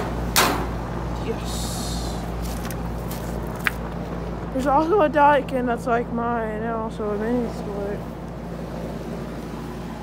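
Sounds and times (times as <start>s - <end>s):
air conditioning units running: 0.0s - 10.0s.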